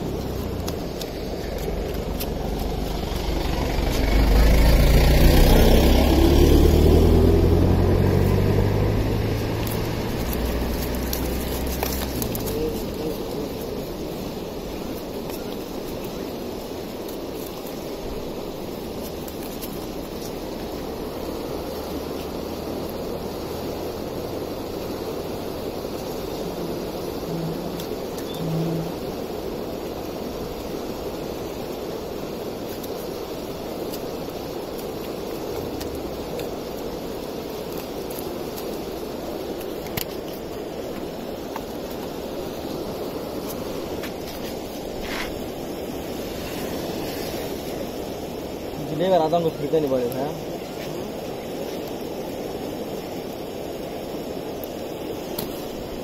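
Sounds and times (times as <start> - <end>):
rushing outdoor background noise: 0.0 - 56.0.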